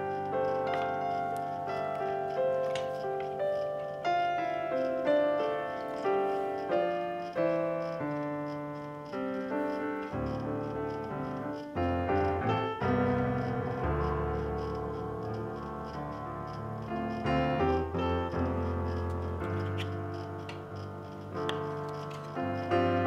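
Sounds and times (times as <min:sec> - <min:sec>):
piano music: 0:00.0 - 0:23.0.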